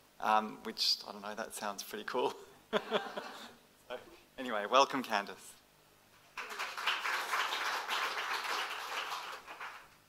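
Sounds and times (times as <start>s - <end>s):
audience applause: 6.4s - 10.0s.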